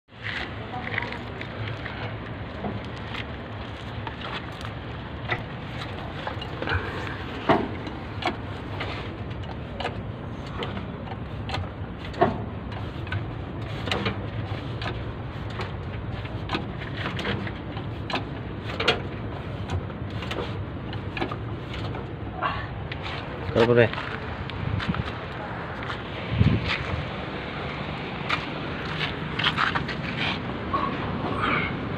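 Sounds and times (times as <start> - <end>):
metal clanks and knocks: 4.0 - 22.2.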